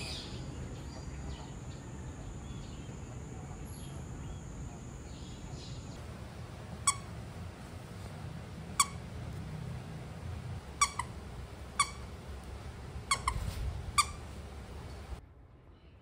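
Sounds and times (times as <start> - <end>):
dog chewing toy: 6.7 - 7.2, 8.6 - 15.2
squeaky toy squeaking: 6.8 - 7.2, 8.7 - 9.2, 10.7 - 12.2, 13.0 - 14.4.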